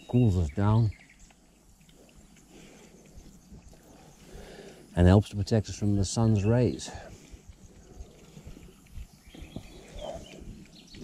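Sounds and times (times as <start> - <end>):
pigs chewing and snuffling: 0.0 - 11.0
pig grunting: 6.9 - 10.7.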